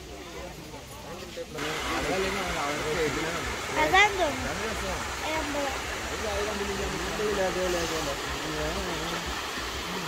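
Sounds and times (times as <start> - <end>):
people talking in background: 0.0 - 10.0
steady hiss: 1.3 - 10.0.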